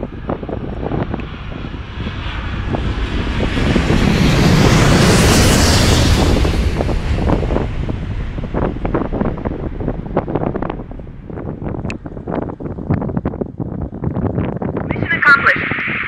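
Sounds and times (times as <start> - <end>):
aircraft passing: 0.0 - 14.2
wind buffeting microphone: 0.0 - 16.0.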